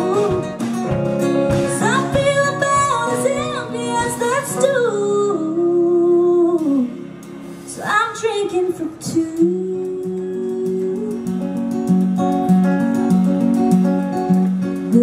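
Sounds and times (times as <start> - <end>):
woman singing wordless notes: 0.0 - 0.6, 1.7 - 11.7
acoustic guitar strumming: 0.0 - 15.0.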